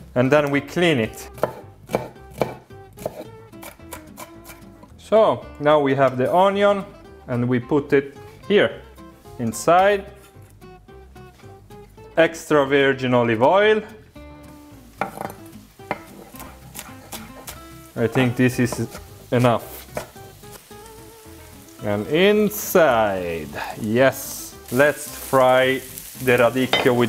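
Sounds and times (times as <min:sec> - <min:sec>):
plucked guitar music: 0:00.0 - 0:12.2, 0:12.9 - 0:27.0
knife tapping on cutting board: 0:01.4 - 0:03.2
knife chopping on wooden board: 0:01.4 - 0:04.6, 0:15.0 - 0:17.6, 0:19.8 - 0:20.2.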